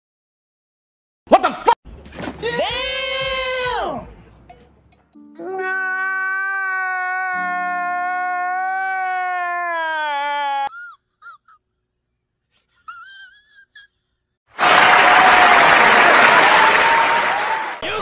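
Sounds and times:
man wailing: 5.4 - 10.7
crowd cheering and screaming: 14.6 - 18.0.

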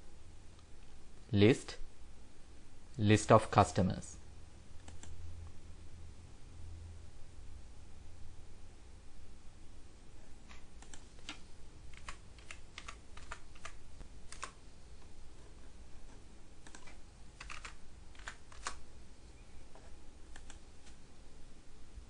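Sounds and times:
computer keyboard typing: 4.8 - 5.2, 10.5 - 14.6, 16.6 - 18.8, 20.2 - 21.0.

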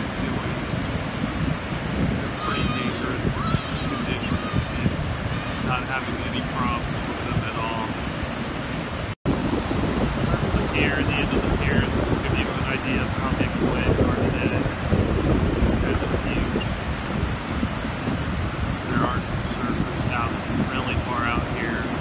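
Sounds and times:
ocean surf breaking: 0.0 - 22.0
wind buffeting microphone: 0.0 - 22.0.

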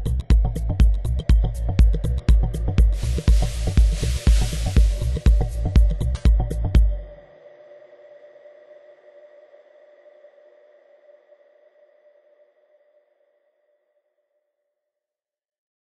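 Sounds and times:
electronic dance beat: 2.3 - 7.0.

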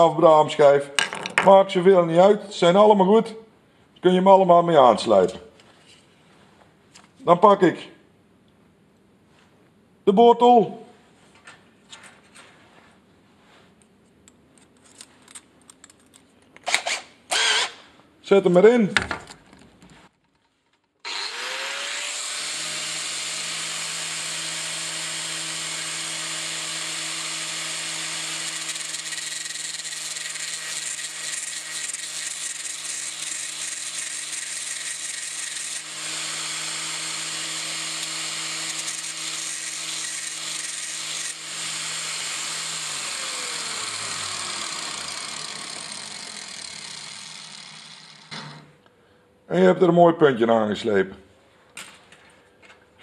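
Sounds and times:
angle grinder running: 17.3 - 17.8, 21.0 - 48.6.

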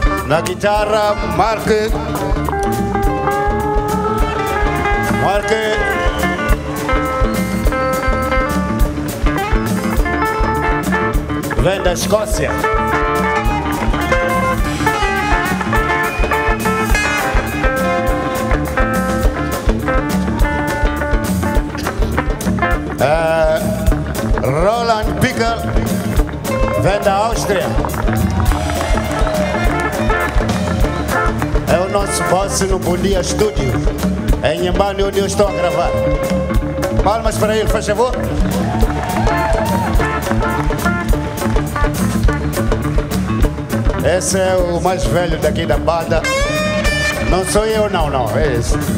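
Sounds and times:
lead guitar sustained notes: 0.0 - 38.4
drum kit beat: 0.0 - 48.9
live band playing: 0.0 - 48.9.

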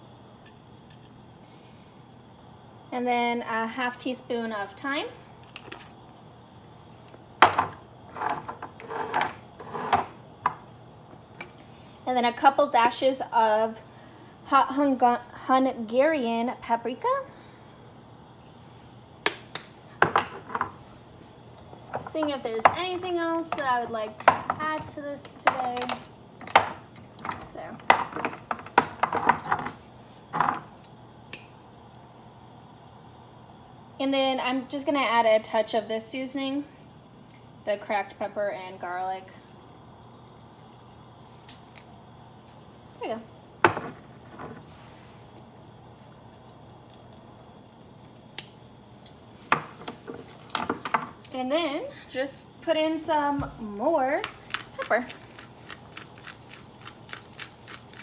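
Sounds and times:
spice jars clicking and knocking: 54.2 - 58.0.

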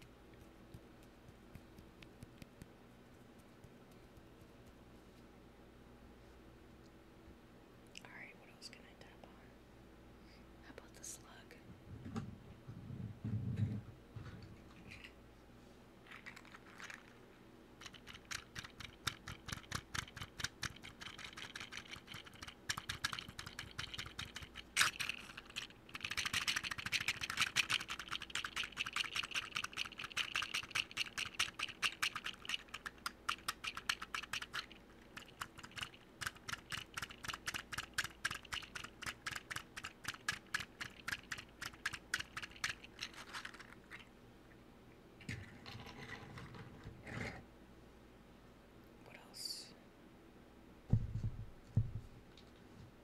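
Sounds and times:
dull low thumps on microphone: 11.9 - 13.8, 50.9 - 52.2
rapid light tapping: 17.8 - 43.0.

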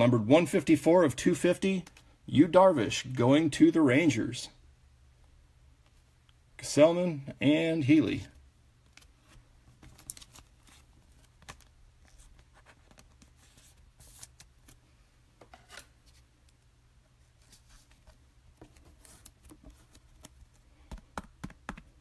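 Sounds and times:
low steady hum: 0.0 - 22.0
trading cards clicking and rustling: 8.9 - 14.8.

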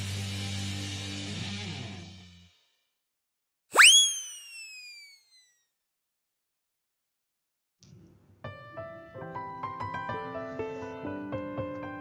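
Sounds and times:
electronic whistle descending: 3.7 - 5.6.

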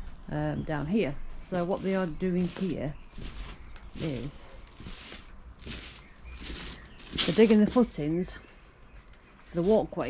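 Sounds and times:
footsteps scuffing on earth: 1.4 - 8.2.

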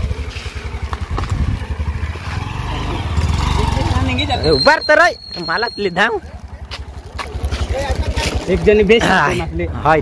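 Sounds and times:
motorcycle engine at low revs: 0.0 - 4.2, 6.3 - 9.3.

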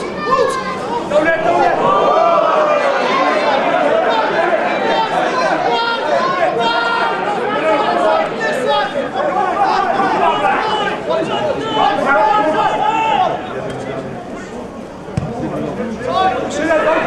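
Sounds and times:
babble of many voices: 0.0 - 17.0.

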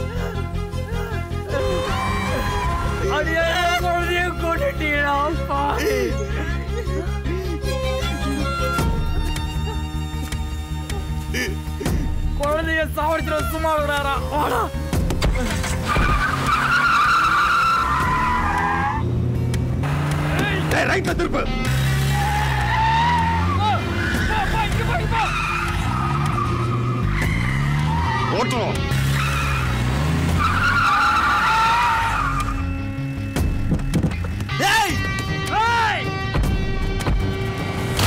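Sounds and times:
tyres screeching: 14.4 - 33.2
car engine running: 18.0 - 30.9.

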